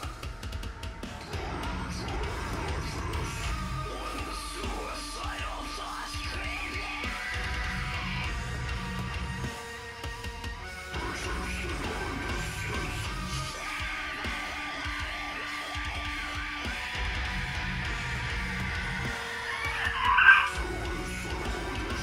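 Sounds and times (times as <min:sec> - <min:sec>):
deathcore music: 0:00.0 - 0:22.0.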